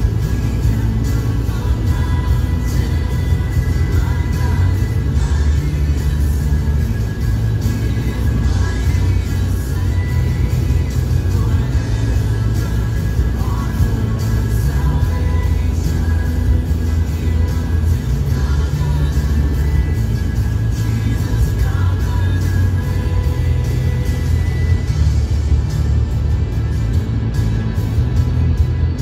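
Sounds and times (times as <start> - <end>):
car rumbling in motion: 0.0 - 29.0
music playing: 0.0 - 29.0.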